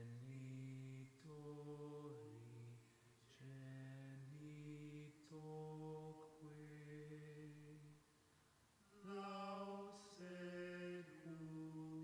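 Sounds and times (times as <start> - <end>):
man chanting softly: 0.0 - 8.0, 8.9 - 12.0.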